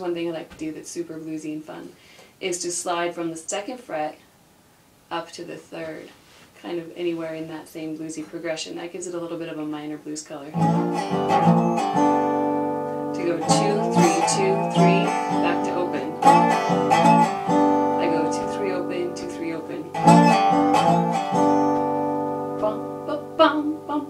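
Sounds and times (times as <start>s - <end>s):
slide guitar strumming chords: 10.5s - 24.0s.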